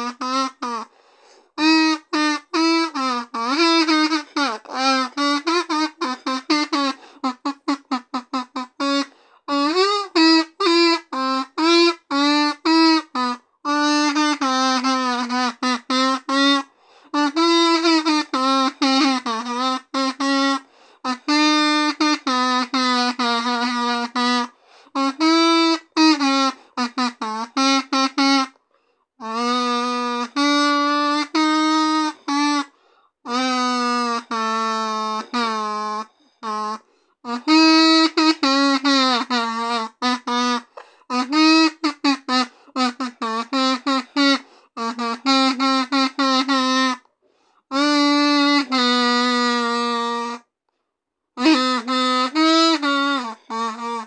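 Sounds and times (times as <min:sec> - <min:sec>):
kazoo buzzing a melody: 0:00.0 - 0:28.6, 0:29.2 - 0:50.5, 0:51.4 - 0:54.0.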